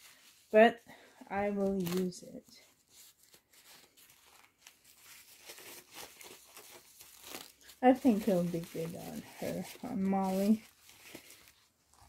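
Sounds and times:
diaper plastic crinkling: 1.3 - 12.0.

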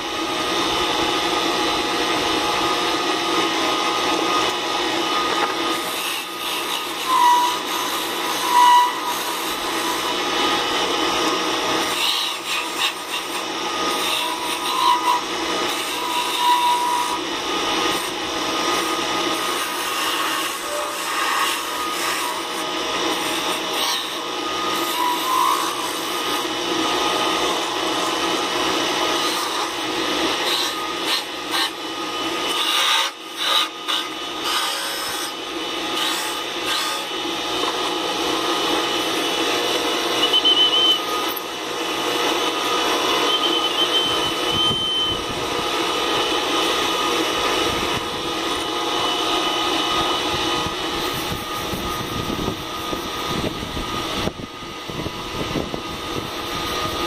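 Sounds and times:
lathe motor hum: 0.0 - 57.0
cutting tool scraping wood: 5.4 - 10.2, 11.2 - 17.2, 17.8 - 48.7.

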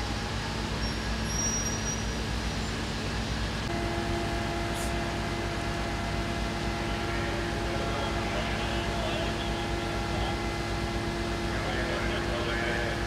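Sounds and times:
fire engine running: 0.0 - 13.0
faint voices: 6.7 - 13.0.

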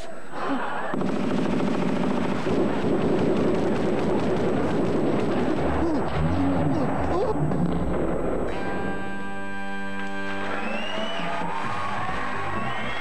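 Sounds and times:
rapid machine-gun fire: 0.9 - 6.2.

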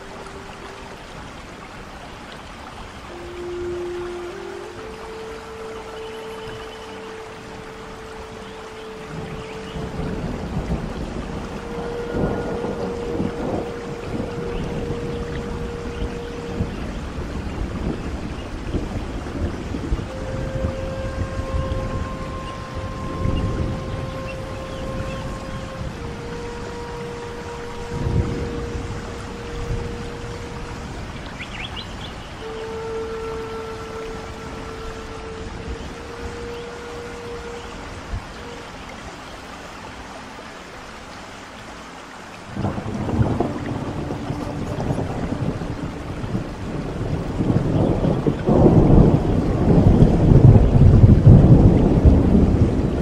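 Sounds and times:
flute playing long notes: 0.0 - 53.0
steady rain: 0.0 - 53.0
thunder rumbling: 7.3 - 32.4, 42.5 - 53.0.

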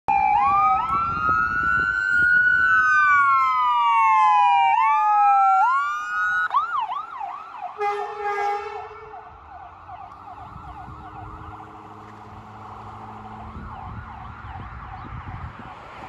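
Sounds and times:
ambulance siren wail and yelp: 0.1 - 16.0
air horn blast: 7.8 - 9.3.

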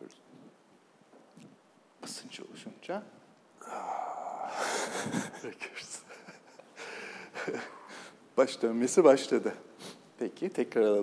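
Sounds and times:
person breathing out: 3.6 - 5.4.

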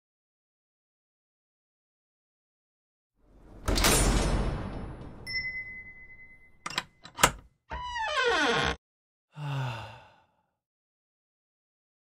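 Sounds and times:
man sighing: 9.3 - 10.5.

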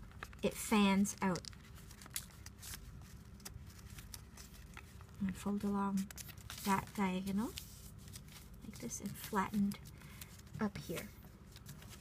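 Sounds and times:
paper crinkles: 0.0 - 12.0
paper rustling: 0.0 - 12.0.

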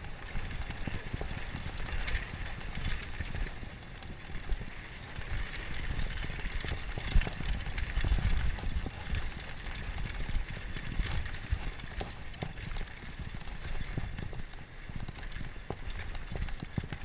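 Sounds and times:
wind rumbling on microphone: 0.0 - 14.4
bike rattling over rough ground: 0.0 - 17.0
bike tyres over dirt and stones: 0.0 - 17.0.

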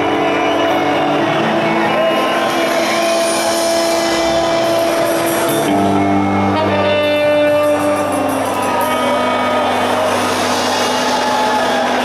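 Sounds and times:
distorted electric guitars: 0.0 - 12.0
saxophone: 1.8 - 9.9.

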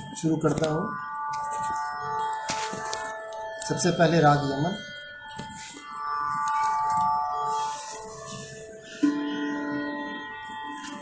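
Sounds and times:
electronic drone of sustained tones: 0.0 - 11.0.

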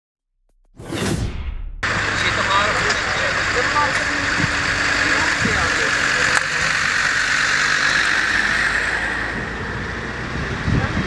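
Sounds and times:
deep rumble: 0.7 - 11.0
rushing swoosh: 0.8 - 2.2.

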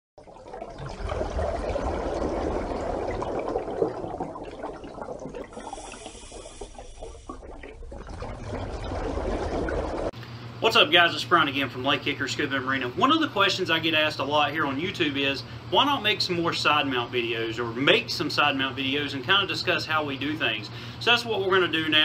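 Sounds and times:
rushing water: 0.4 - 10.1.

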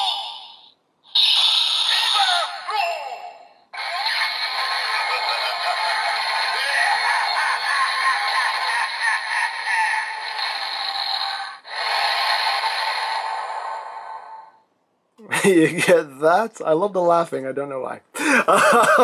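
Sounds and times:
toy speaker synthesized music: 1.2 - 3.0, 3.8 - 12.2
evil laughing: 3.8 - 11.6, 18.2 - 19.0.

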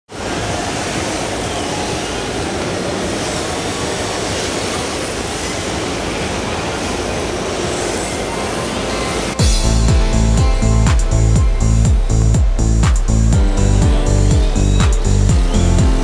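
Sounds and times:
rushing hall ambience: 0.1 - 16.0.

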